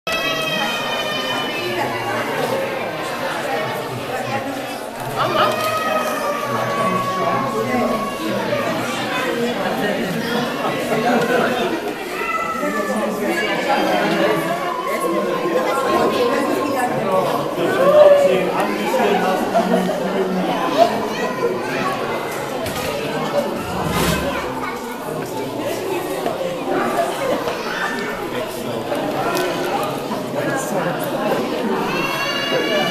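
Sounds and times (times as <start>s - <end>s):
chatter of many voices: 0.1s - 32.9s.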